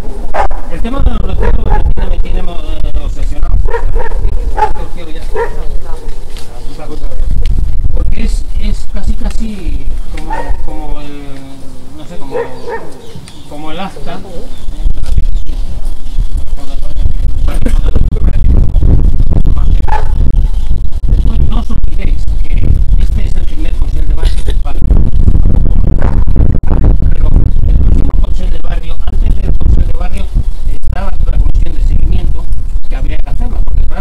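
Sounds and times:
dog barking: 0.0 - 0.7, 1.3 - 2.1, 3.7 - 6.2, 10.2 - 10.7, 12.2 - 13.2, 19.9 - 20.2
steady low rumble: 0.0 - 12.7, 13.9 - 34.0.

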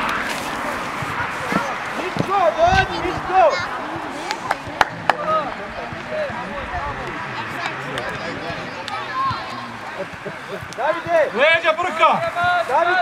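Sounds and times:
children shouting and calling: 0.0 - 13.0.

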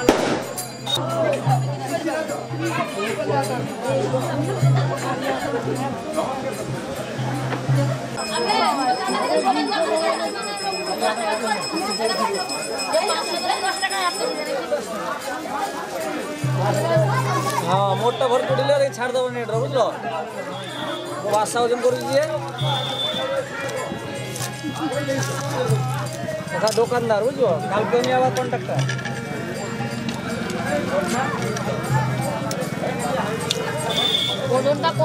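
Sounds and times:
people talking over one another: 0.0 - 35.0.

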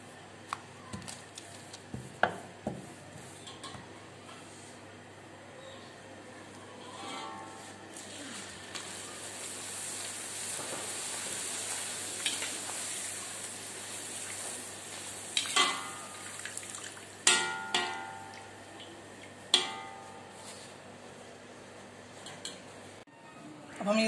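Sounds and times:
dough sizzling in hot fat: 7.7 - 20.7
metal spoon clanking on wok: 15.4 - 16.1, 17.2 - 18.3, 19.5 - 20.2.

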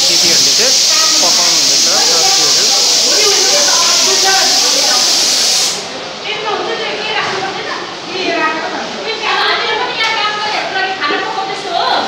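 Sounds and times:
food frying in a wok: 0.0 - 5.8
people talking: 0.0 - 12.0.

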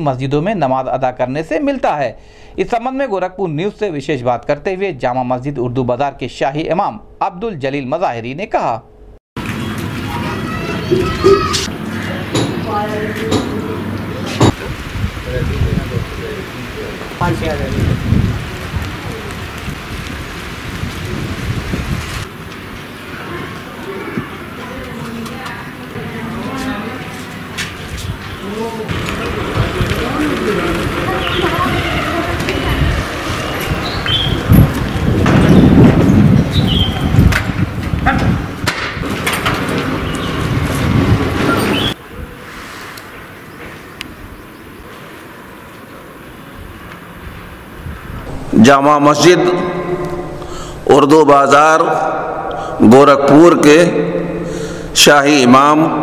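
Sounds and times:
wind buffeting microphone: 14.4 - 22.3, 27.8 - 42.4, 46.6 - 51.2
rumbling hiss: 46.4 - 55.4.

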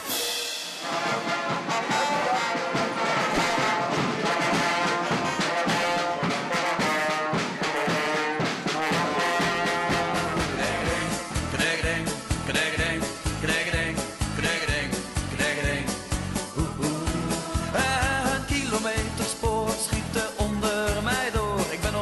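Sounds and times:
brass band playing lively tune: 0.0 - 22.0
steady drum beat: 0.0 - 22.0.

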